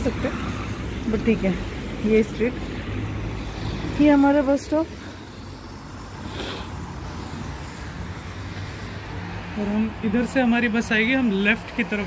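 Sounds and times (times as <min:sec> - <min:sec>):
tyre hiss: 0:00.0 - 0:09.6
traffic on wet street: 0:00.0 - 0:12.0.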